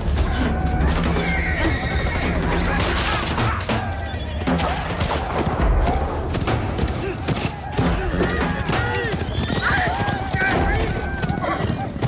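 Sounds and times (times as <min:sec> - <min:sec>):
horse whinnying: 0:01.0 - 0:03.2.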